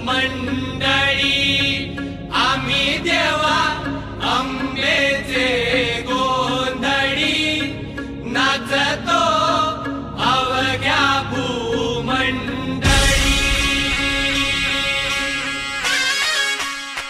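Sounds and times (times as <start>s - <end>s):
person chanting devotional song: 0.0s - 16.2s
steady drone: 0.0s - 16.3s.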